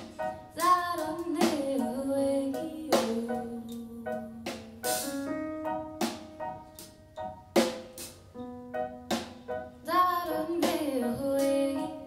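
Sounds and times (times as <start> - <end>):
electric keyboard notes: 0.0 - 12.0
woman singing: 0.5 - 4.8, 9.8 - 12.0
drum kit hits: 4.5 - 8.3, 9.0 - 9.6.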